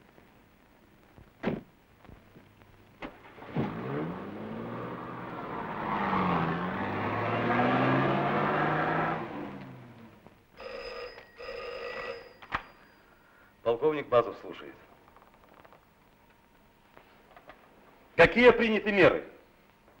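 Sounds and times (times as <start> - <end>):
car engine starting and revving: 3.0 - 10.2
telephone bell ringing: 10.6 - 13.3.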